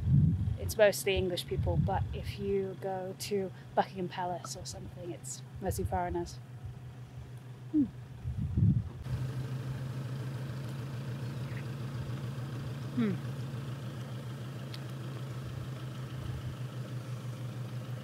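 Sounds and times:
low engine hum: 0:00.0 - 0:18.0
person humming hmm: 0:07.7 - 0:08.0, 0:12.9 - 0:13.3.

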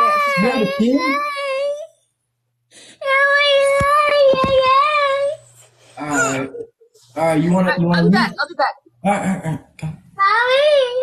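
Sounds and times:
toddler crying: 0:00.0 - 0:01.9, 0:06.1 - 0:06.6.

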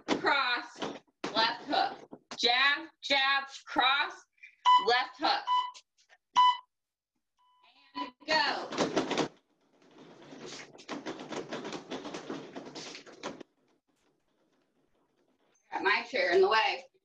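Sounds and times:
short electronic beep: 0:06.4 - 0:06.7
dense rustling with clicks: 0:08.7 - 0:16.7.

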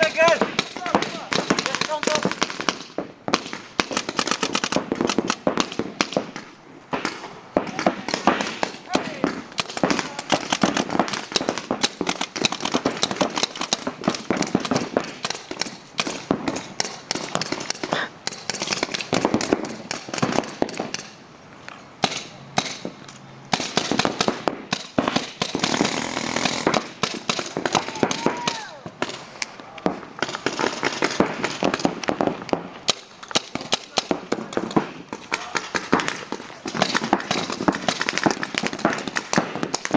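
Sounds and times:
paintball markers firing: 0:00.0 - 0:21.2, 0:22.0 - 0:39.9.

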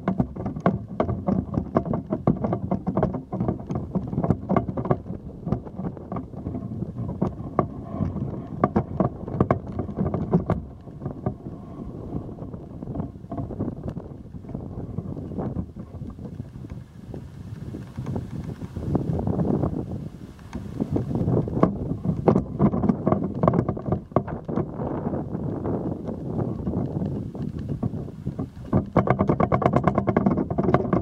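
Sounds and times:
pole knocks and rattles: 0:00.0 - 0:31.0
wind buffeting microphone: 0:00.0 - 0:31.0.

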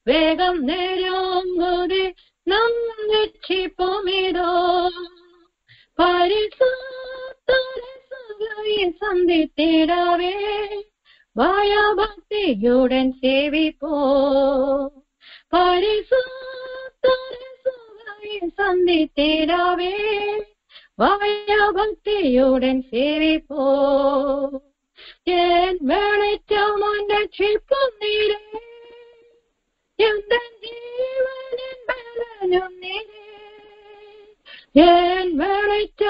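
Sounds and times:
woman singing gospel: 0:00.0 - 0:05.2, 0:06.0 - 0:10.8, 0:11.4 - 0:29.2, 0:30.0 - 0:36.0.

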